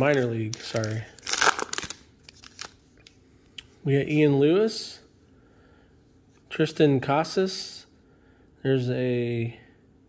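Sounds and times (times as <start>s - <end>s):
trading cards clicking and rustling: 0.0s - 3.2s.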